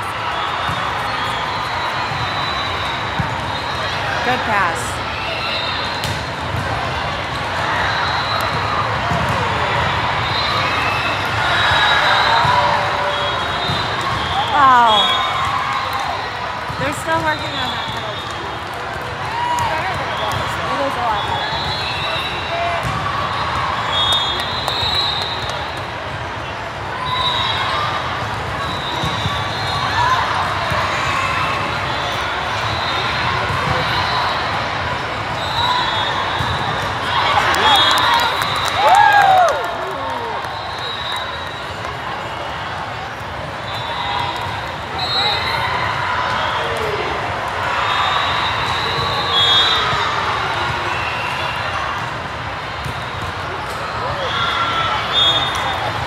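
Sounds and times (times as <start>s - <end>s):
crowd chatter echoing: 0.0s - 23.9s.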